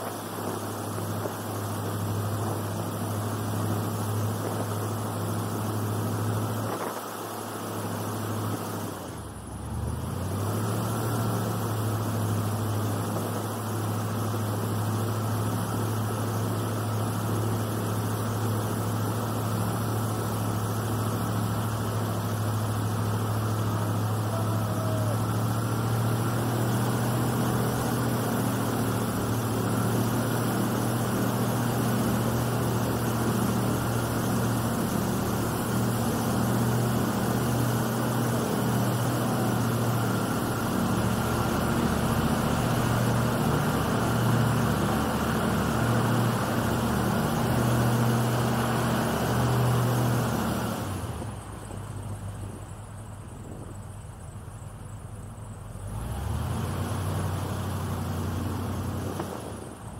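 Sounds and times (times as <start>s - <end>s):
airboat engine and propeller drone: 0.0s - 59.9s.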